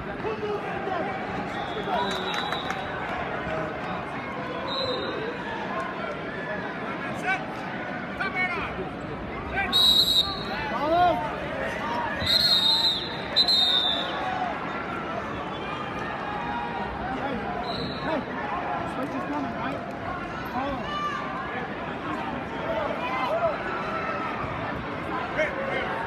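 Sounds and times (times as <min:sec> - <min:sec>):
crowd talking and shouting: 0:00.0 - 0:26.0
whistle blasts: 0:09.7 - 0:10.6, 0:12.2 - 0:14.2, 0:17.6 - 0:18.1.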